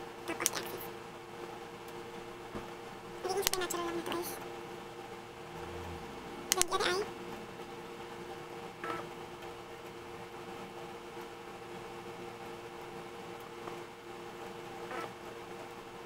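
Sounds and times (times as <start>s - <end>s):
low hiss: 0.0s - 8.4s
two-pitch background hum: 0.0s - 16.0s.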